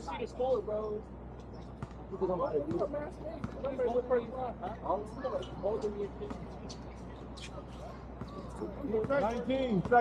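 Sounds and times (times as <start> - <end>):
basketball bouncing on court: 1.8 - 2.0, 9.0 - 10.0
people talking: 2.1 - 10.0.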